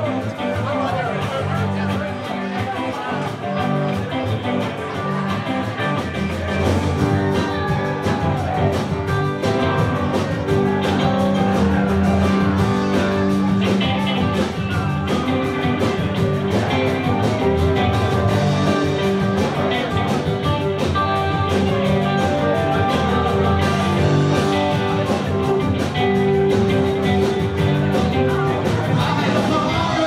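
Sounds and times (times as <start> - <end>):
live rock band playing: 0.0 - 30.0.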